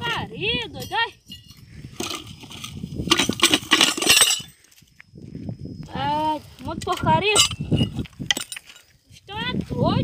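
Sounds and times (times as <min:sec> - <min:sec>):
metal objects clinking and rattling: 0:00.1 - 0:05.0, 0:06.7 - 0:09.0.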